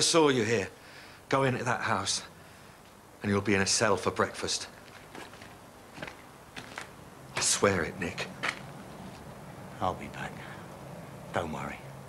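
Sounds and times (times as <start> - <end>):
background hiss: 0.0 - 12.0
faint footsteps: 4.7 - 9.5.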